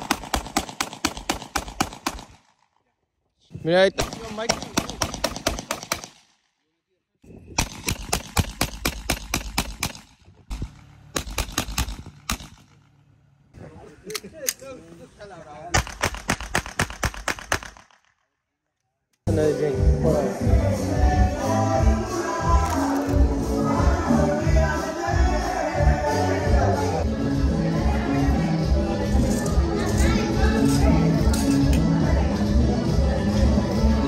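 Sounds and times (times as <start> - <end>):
rapid volleys of sharp bangs: 0.0 - 2.4, 4.0 - 6.2, 7.6 - 12.8, 15.8 - 17.9
loud music: 19.3 - 34.0
faint voices: 21.3 - 34.0.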